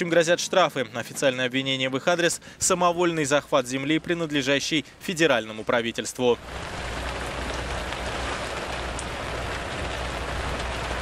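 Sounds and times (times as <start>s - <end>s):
burning wood crackling: 2.4s - 11.0s.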